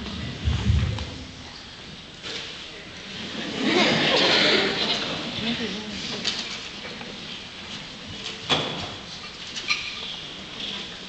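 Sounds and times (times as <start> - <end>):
low rustle and shuffle: 0.0 - 2.7.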